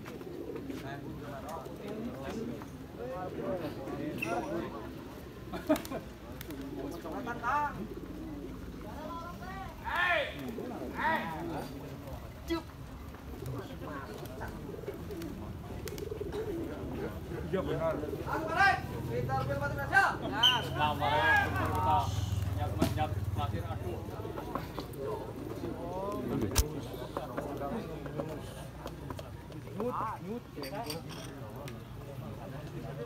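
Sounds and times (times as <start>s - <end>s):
pigeons cooing: 0.0s - 29.0s
distant murmur of voices: 0.0s - 33.0s
faint background chatter: 0.0s - 33.0s.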